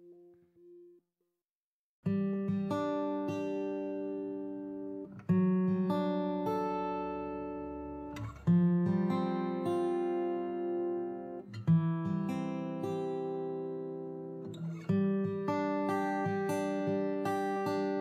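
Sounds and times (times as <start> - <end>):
acoustic guitar slow chords: 2.0 - 18.0.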